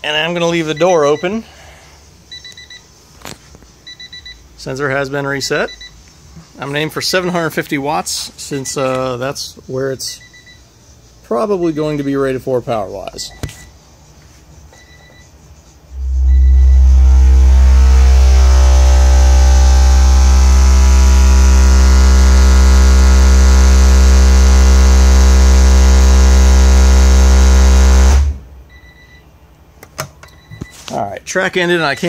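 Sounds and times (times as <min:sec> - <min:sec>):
loud low bass tone: 0:15.9 - 0:28.7.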